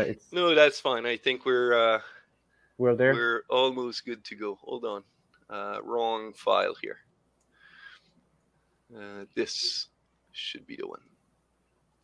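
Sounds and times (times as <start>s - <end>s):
man's voice: 0.0s - 2.1s, 2.8s - 7.0s, 9.0s - 9.8s
faint breathy sound: 1.8s - 3.1s, 7.6s - 8.1s.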